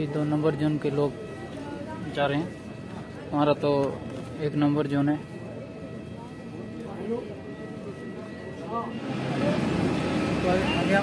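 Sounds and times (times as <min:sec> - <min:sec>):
background chatter: 0:00.0 - 0:11.0
steady engine rumble: 0:08.9 - 0:11.0.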